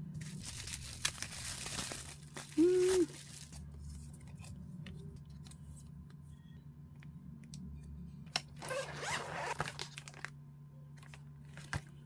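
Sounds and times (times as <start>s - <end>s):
plastic rustle: 0.1s - 4.2s.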